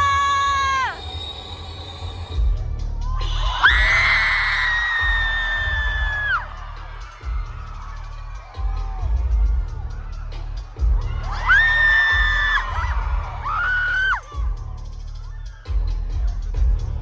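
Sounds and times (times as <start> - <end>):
shrill held scream: 0.0 - 1.0, 3.2 - 6.5, 11.3 - 14.4
crowd screaming: 0.0 - 15.8
deep bass music: 2.0 - 17.0
long high scream: 3.2 - 6.5.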